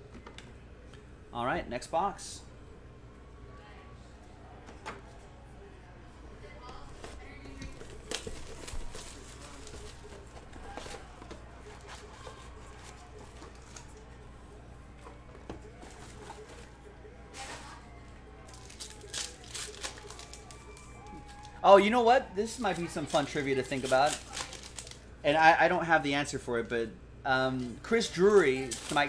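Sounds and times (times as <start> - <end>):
foil packs rustling: 7.0 - 13.9, 18.5 - 21.8, 22.4 - 25.0, 28.1 - 29.0
plastic wrap tearing and crinkling: 7.8 - 11.2, 18.5 - 21.6, 22.5 - 25.0, 28.3 - 29.0.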